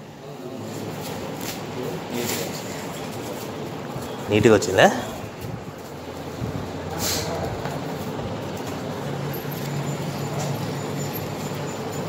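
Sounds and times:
short hiss: 0:07.0 - 0:07.4.

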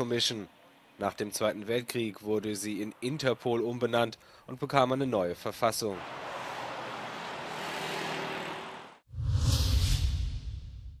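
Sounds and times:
cars driving by: 0:01.9 - 0:04.4, 0:05.4 - 0:09.0
whoosh over low rumble: 0:09.1 - 0:11.0.

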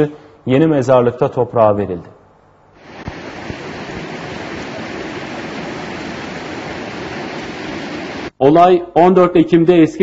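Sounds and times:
river water rushing: 0:02.8 - 0:08.3.

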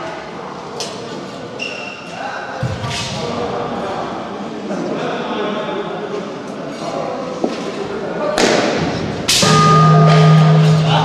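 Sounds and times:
held low tone: 0:09.4 - 0:11.0.

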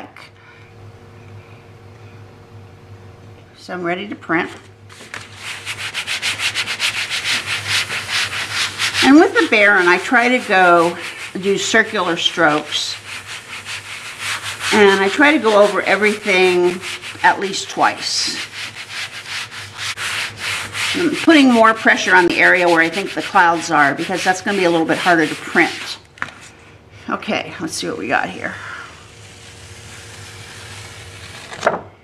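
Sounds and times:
baren rubbing over paper: 0:04.5 - 0:26.7, 0:28.2 - 0:31.6.

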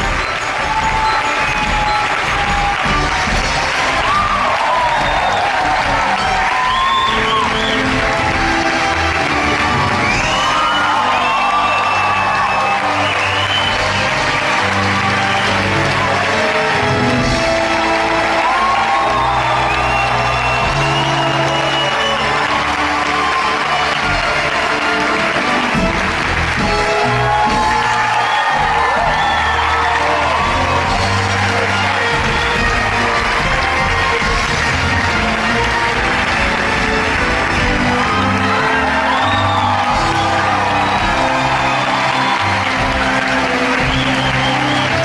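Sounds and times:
audience applauding and cheering: 0:00.0 - 0:45.0
orchestra playing: 0:00.0 - 0:45.0
whoops: 0:03.8 - 0:14.2, 0:17.6 - 0:24.8, 0:26.9 - 0:34.6, 0:38.0 - 0:45.0.

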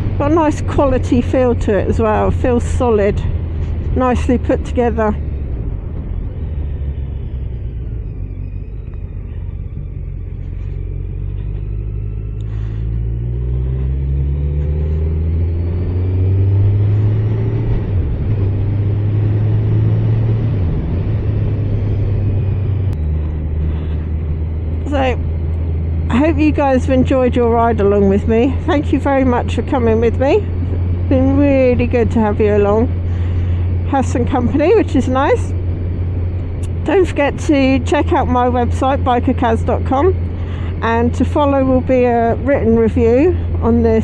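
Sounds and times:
motorcycle engine revving: 0:00.0 - 0:44.0.

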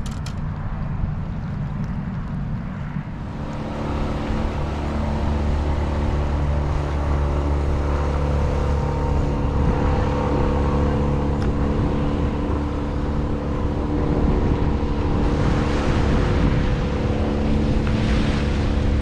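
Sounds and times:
generators humming: 0:00.0 - 0:19.0
turbulent water rushing: 0:02.8 - 0:19.0.

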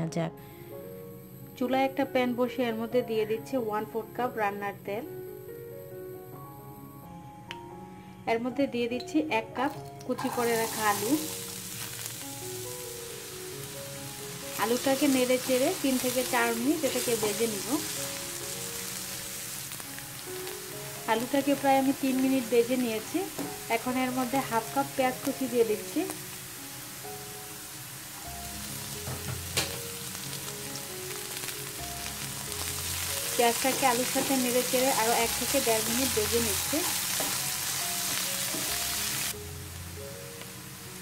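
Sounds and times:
potatoes sizzling in hot oil: 0:09.6 - 0:41.0.

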